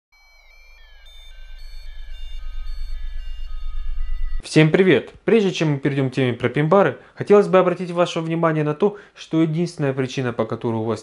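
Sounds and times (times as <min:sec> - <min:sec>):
high synthesised tones stepping down: 0:00.2 - 0:04.4
fast-pulsing low bass: 0:01.8 - 0:04.4.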